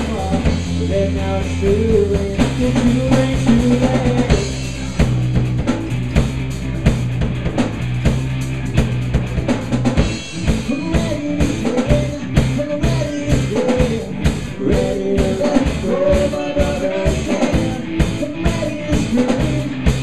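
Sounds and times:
drum kit beating: 0.0s - 20.0s
electric guitar: 0.0s - 20.0s.

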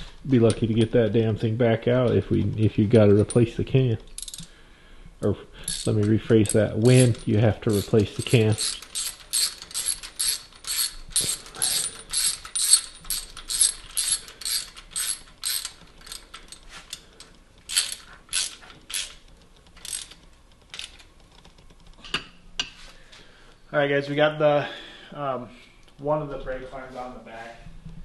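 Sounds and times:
ratchet wrench clicking: 4.2s - 4.5s, 5.6s - 17.0s, 17.7s - 21.1s.

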